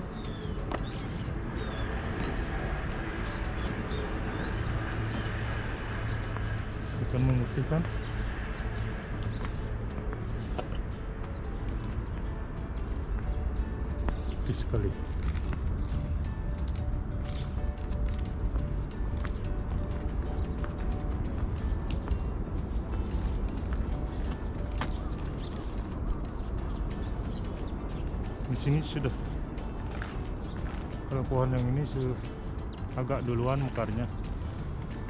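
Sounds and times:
faint music: 0:00.0 - 0:35.0
wind buffeting microphone: 0:00.0 - 0:35.0.

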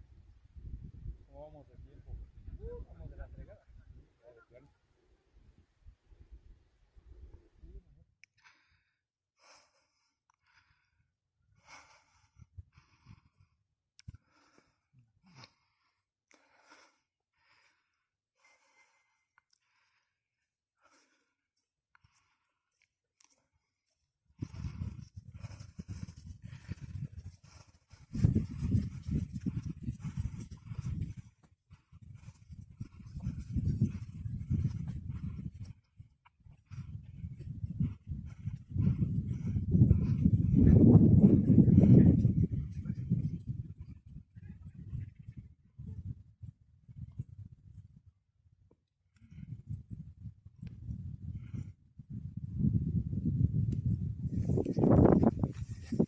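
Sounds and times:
wind buffeting microphone: 0:00.0 - 0:04.6, 0:24.3 - 0:48.2, 0:49.3 - 0:56.0.

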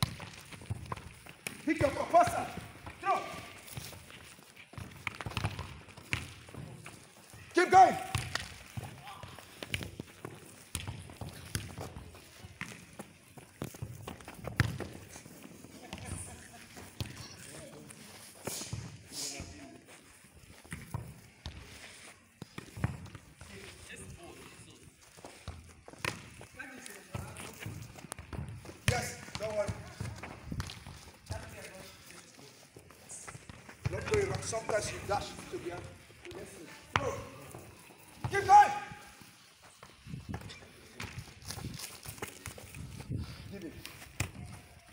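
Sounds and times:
running footsteps: 0:00.0 - 0:44.9
football thuds: 0:04.7 - 0:15.2, 0:27.1 - 0:31.7.

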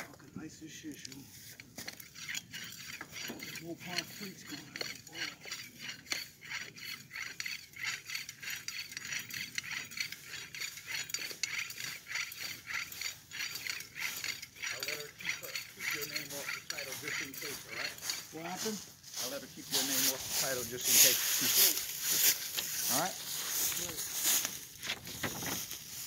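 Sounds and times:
jack ratchet clicking: 0:01.8 - 0:18.4.

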